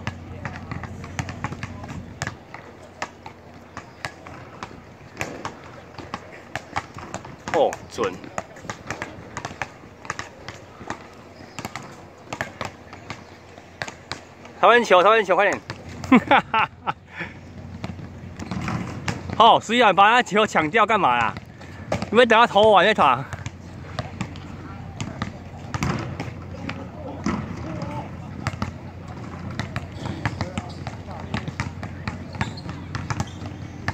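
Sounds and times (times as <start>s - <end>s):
basketballs bouncing on hard court: 0.0s - 16.5s, 17.5s - 19.7s, 20.6s - 33.9s.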